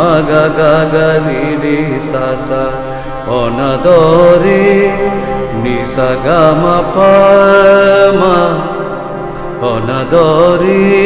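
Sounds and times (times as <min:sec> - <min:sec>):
harmonium playing: 0:00.0 - 0:11.0
man singing ornamented melody: 0:00.0 - 0:11.0.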